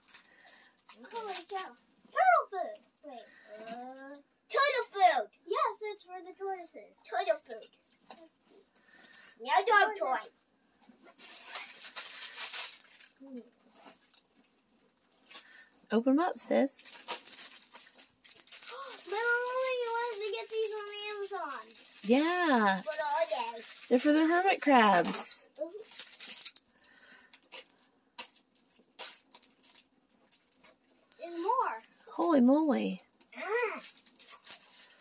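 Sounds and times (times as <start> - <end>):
plastic packaging rustling: 0.0 - 2.3, 7.2 - 9.4, 10.8 - 15.9, 16.5 - 35.0
child speaking: 1.0 - 8.3, 9.4 - 10.3, 18.7 - 25.9, 31.2 - 33.8.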